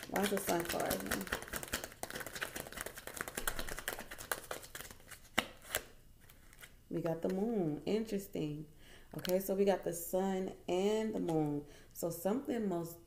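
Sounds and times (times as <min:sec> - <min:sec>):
cards being shuffled: 0:00.0 - 0:07.4.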